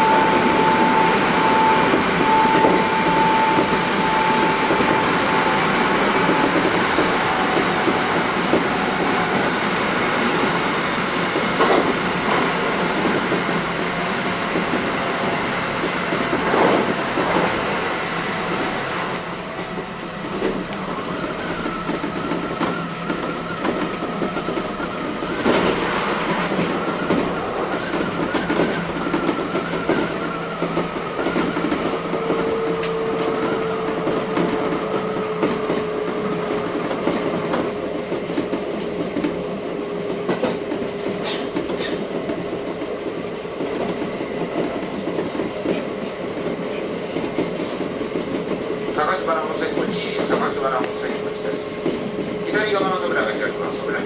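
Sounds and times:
train wheels rolling on rails: 0.0 - 54.0.

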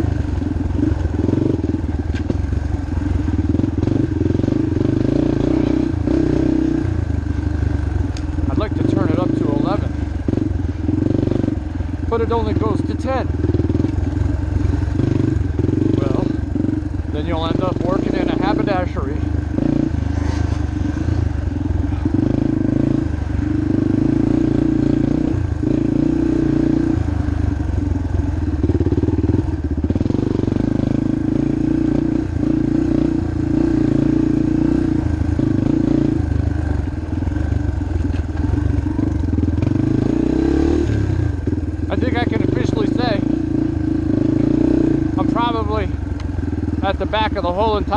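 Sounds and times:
dirt bike engine revving: 0.0 - 47.9.

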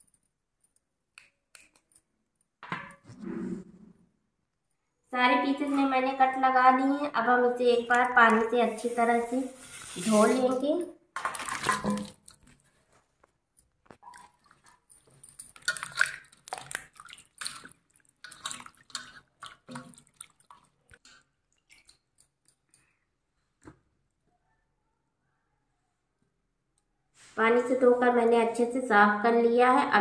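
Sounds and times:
splash into bowl of water: 11.2 - 12.4.

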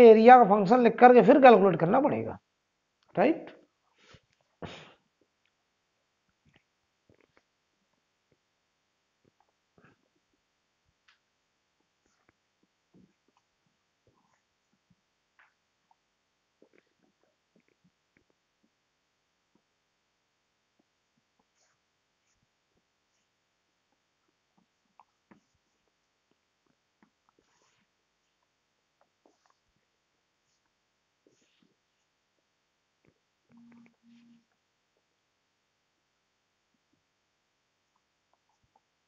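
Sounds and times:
low steady tone: 33.4 - 34.6.

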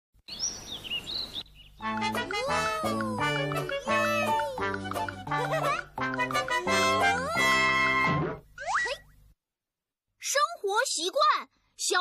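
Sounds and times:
birds chirping and whistling: 0.3 - 2.0
music: 1.8 - 8.4.

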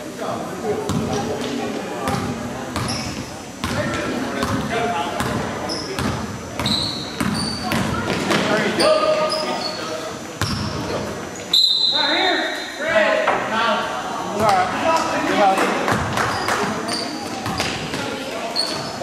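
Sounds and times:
echoing voices: 0.0 - 19.0
basketball bouncing: 0.9 - 1.2, 3.6 - 5.4, 6.0 - 8.4, 17.3 - 18.1
sneakers squeaking on hardwood: 2.1 - 11.7, 16.0 - 19.0.

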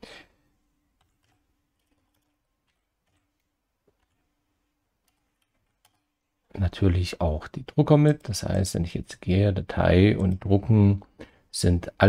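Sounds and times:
faint keyboard keystrokes: 1.0 - 4.4.

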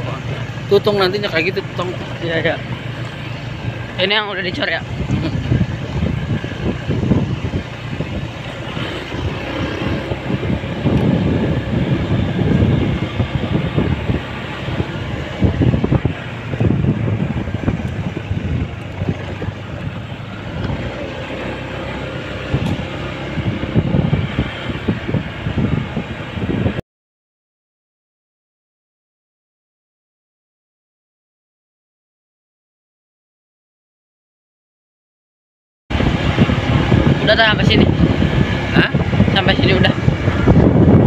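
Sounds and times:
motorcycle engine running: 0.0 - 26.8, 35.9 - 41.0
wind buffeting on microphone: 0.0 - 26.8, 35.9 - 41.0.

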